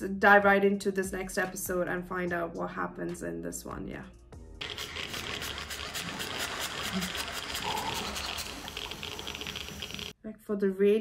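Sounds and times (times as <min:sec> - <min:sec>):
hand-crank flashlight whirring: 0:04.7 - 0:10.1.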